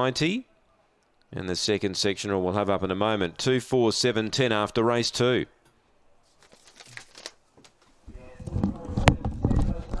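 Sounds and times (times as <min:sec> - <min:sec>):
muffled voices: 0:08.1 - 0:10.0.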